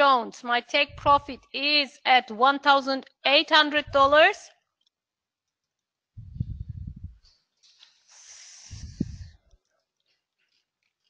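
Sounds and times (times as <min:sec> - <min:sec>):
low thumps and rumbles: 0:00.9 - 0:01.3, 0:06.2 - 0:07.2.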